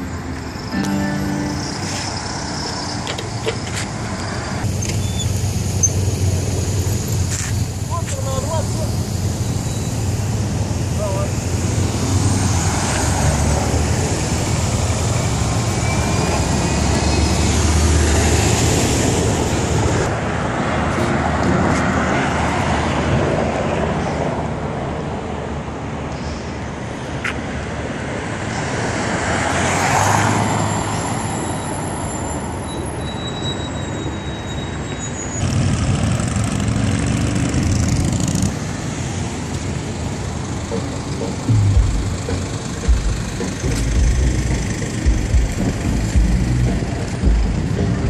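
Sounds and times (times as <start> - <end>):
road traffic rumble: 0.0 - 48.0.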